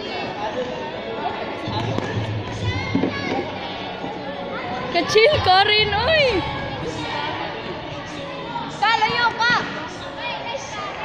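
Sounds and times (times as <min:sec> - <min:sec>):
calls and chatter: 0:00.0 - 0:11.0
hall background noise: 0:00.0 - 0:11.0.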